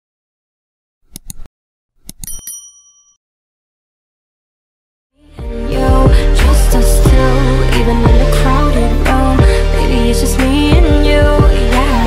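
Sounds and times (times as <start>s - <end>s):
mouse clicks: 1.1s - 2.3s
bright bell ding: 2.2s - 3.2s.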